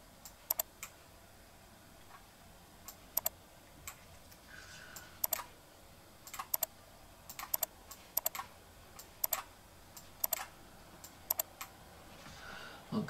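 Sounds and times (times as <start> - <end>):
mouse button clicking: 0.5 - 0.7, 5.2 - 5.4, 7.3 - 8.4, 9.2 - 9.4, 10.2 - 10.4, 11.3 - 11.5.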